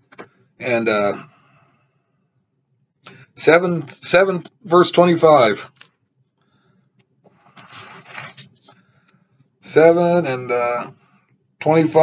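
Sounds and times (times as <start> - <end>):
pages rustling: 5.6 - 6.0, 7.3 - 8.9.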